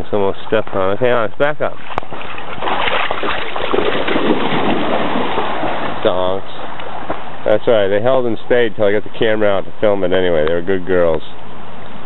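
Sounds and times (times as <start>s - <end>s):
river water rushing: 2.1s - 7.5s.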